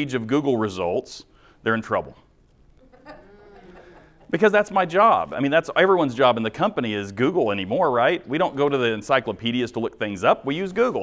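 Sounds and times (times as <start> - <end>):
presenter speaking: 4.2 - 11.0.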